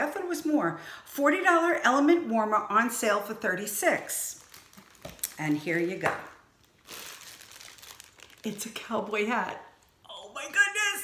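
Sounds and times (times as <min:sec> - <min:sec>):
plastic bag crinkling: 0:04.0 - 0:10.0.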